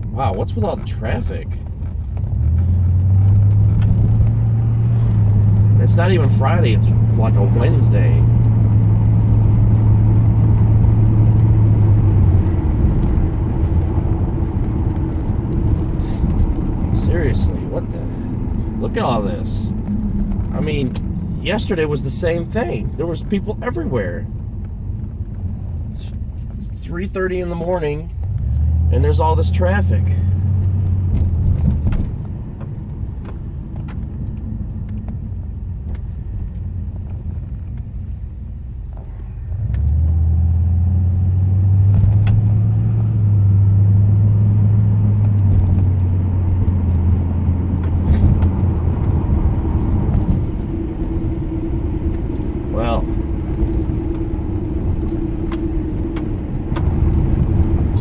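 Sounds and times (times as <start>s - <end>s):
car engine hum inside cabin: 0.0s - 58.0s.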